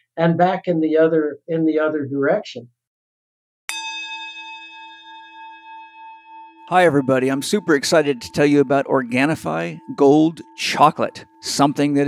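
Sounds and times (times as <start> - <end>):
struck bell ringing: 3.7 - 12.0.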